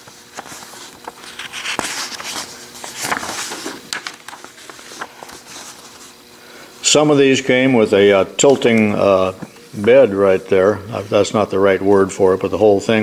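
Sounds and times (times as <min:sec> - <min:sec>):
paper clicks and crinkles: 0:00.0 - 0:06.2
paper pages rustling: 0:00.0 - 0:06.2.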